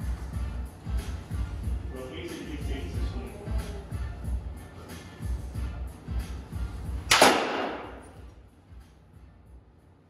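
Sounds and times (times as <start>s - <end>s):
background music with beat: 0.0s - 9.6s
bat striking ball: 7.1s - 8.2s.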